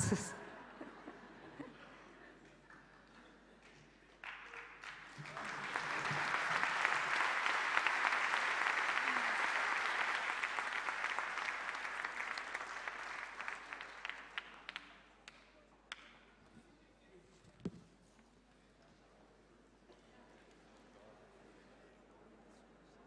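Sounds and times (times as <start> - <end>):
audience applauding: 3.6 - 15.0.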